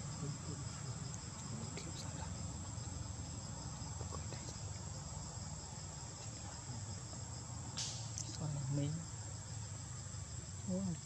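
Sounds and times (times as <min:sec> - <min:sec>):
sharp click: 0:07.8 - 0:08.2.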